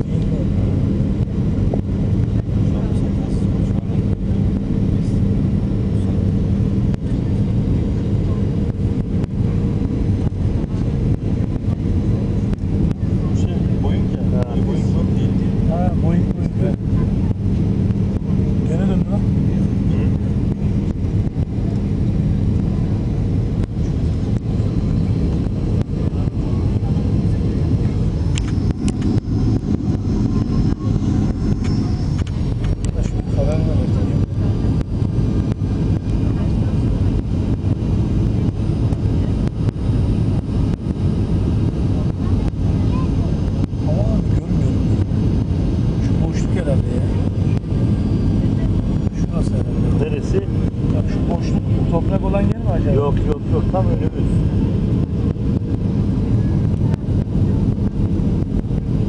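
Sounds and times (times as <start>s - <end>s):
jet cabin engine drone: 0.0s - 59.0s
low steady hum: 0.0s - 59.0s.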